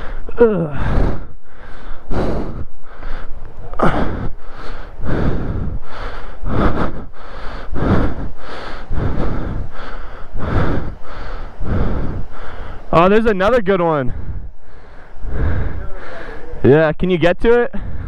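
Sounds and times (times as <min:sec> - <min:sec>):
person breathing hard: 0:00.0 - 0:13.0, 0:14.0 - 0:16.6, 0:17.8 - 0:18.0.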